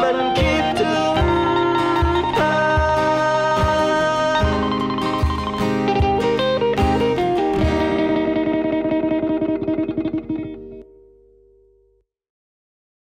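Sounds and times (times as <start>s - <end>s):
acoustic guitars playing: 0.0s - 11.8s
low cajon thumps: 0.4s - 10.6s.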